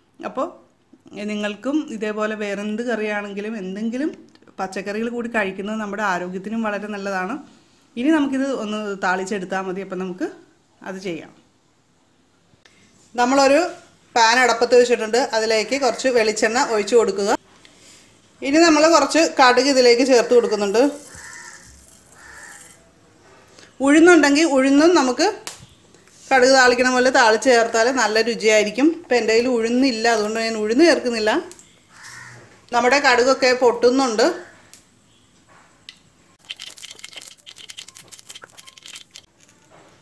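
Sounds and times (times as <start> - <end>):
woman speaking: 13.2 - 17.4, 18.4 - 21.1, 23.8 - 25.4, 26.3 - 31.6, 32.7 - 34.5
cabbage stirred in steel bowl: 20.7 - 22.8, 36.4 - 39.7.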